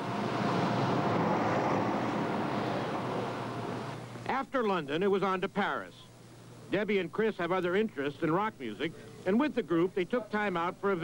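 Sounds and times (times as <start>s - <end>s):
bus passing: 0.0s - 4.0s.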